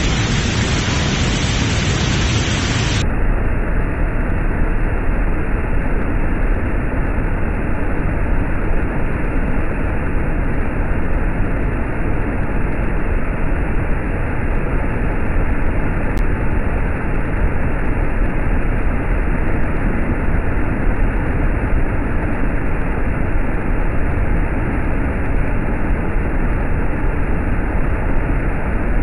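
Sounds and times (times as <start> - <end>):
waterfall rushing: 0.0 - 3.0.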